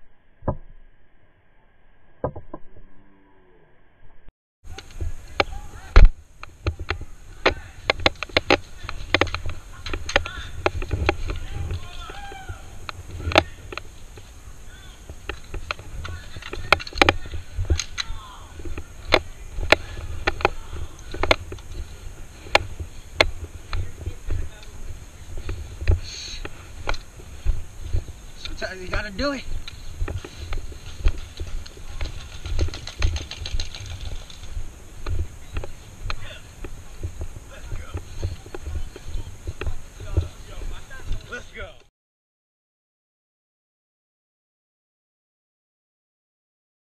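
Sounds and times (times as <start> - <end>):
distant players calling: 4.7 - 41.8
camera rumble and knocks: 4.9 - 14.3, 15.0 - 41.4.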